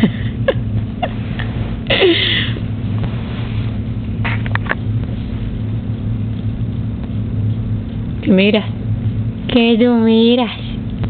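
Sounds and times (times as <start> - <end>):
constant hiss: 0.0 - 11.0
low hum: 0.0 - 11.0.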